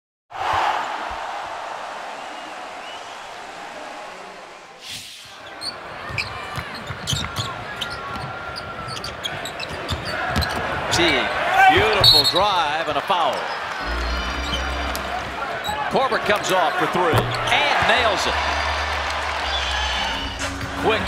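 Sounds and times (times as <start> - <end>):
sneaker squeaks: 5.4 - 10.7, 11.8 - 12.6, 13.4 - 15.9
crowd hum: 13.8 - 21.0.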